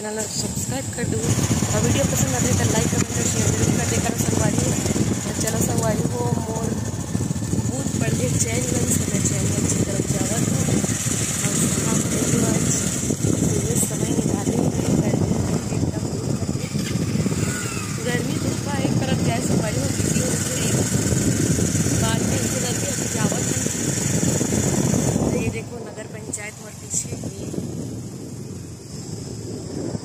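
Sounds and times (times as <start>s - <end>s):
motorcycle engine running: 0.0s - 30.0s
wind buffeting microphone: 0.0s - 30.0s.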